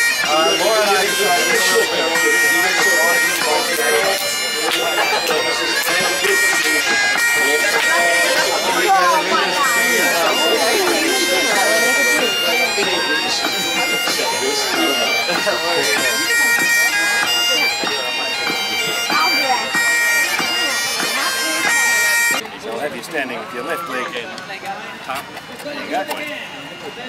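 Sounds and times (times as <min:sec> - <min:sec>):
bagpipe tune over drones: 0:00.0 - 0:22.5, 0:23.2 - 0:24.6, 0:25.8 - 0:27.0
people talking: 0:00.0 - 0:27.0.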